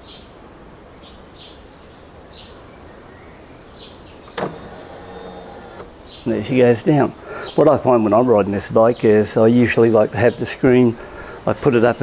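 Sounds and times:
electric windscreen motor: 4.3s - 6.0s.

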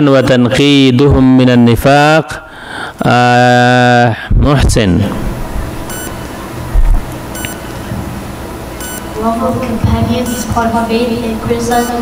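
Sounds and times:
room noise: 0.0s - 12.0s
faint electronic beeps: 5.9s - 6.2s, 8.8s - 9.1s, 10.2s - 10.6s, 11.7s - 12.0s.

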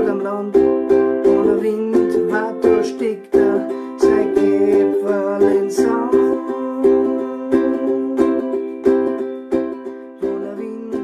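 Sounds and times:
ukulele strumming chords: 0.0s - 11.0s.

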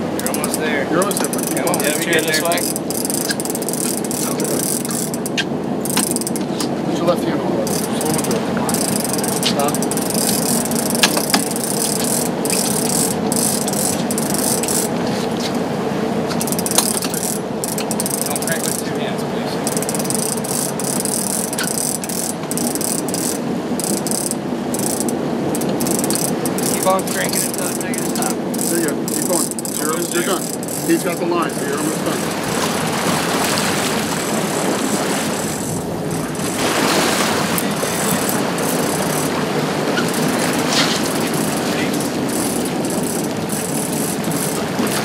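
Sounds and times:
boat engine hum: 0.0s - 45.0s
wind and water rushing: 0.0s - 45.0s
fishing reel gears ratcheting: 0.2s - 6.6s, 7.6s - 15.0s, 16.3s - 19.0s, 19.6s - 32.7s, 35.4s - 36.6s, 37.6s - 39.4s, 40.0s - 45.0s.

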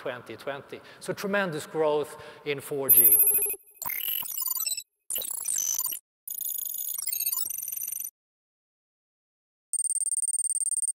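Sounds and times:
high-pitched electronic ringing trill: 2.9s - 8.1s, 9.8s - 11.0s.

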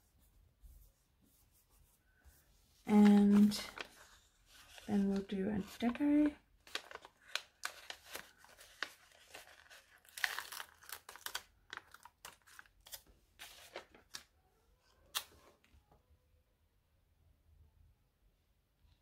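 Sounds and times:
sticker sheet crinkling: 3.0s - 14.3s.

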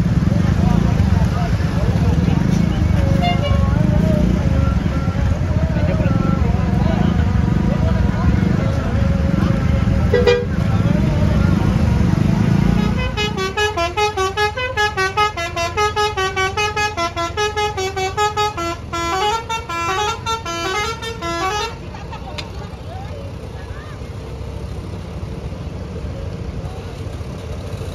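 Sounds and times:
bus engine rumble passing: 0.0s - 27.9s
multi-tone bus horn tune: 2.5s - 7.2s, 9.9s - 11.0s, 12.5s - 22.3s.

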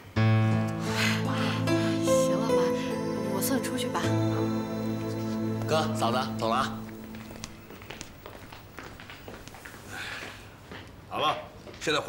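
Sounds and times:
footsteps on a hard floor: 5.2s - 11.0s.

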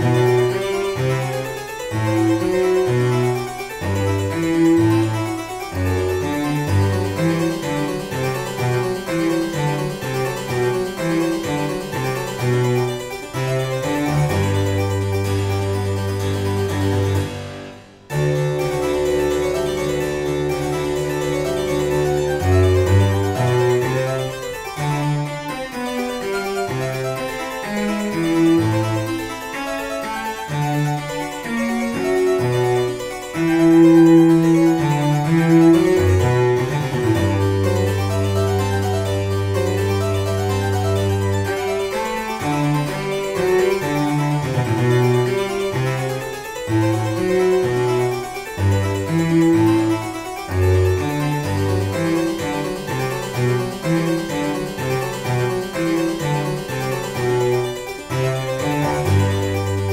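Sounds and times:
cello: 0.0s - 59.9s
harpsichord: 0.0s - 59.9s.

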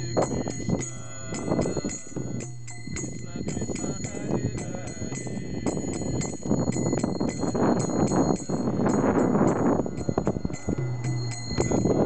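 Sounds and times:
devotional street music: 0.0s - 12.0s
hand cymbals struck in steady beat: 0.0s - 12.0s.

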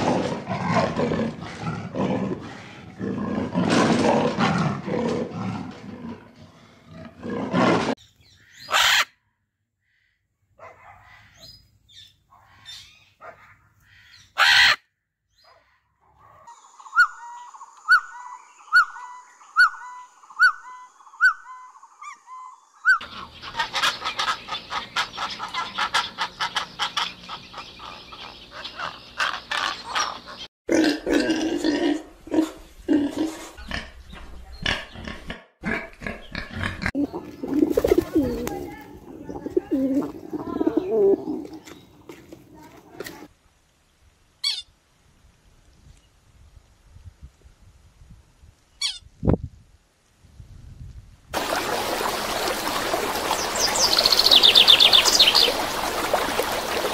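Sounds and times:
bird squawk: 8.3s - 9.2s, 12.4s - 14.8s, 16.8s - 30.5s, 44.4s - 44.7s, 48.8s - 49.1s
clamour of many birds: 15.4s - 30.5s, 36.1s - 43.3s, 51.4s - 56.9s
bird chirping call: 16.5s - 30.5s, 53.3s - 55.6s
pigeons cooing: 36.6s - 43.3s.

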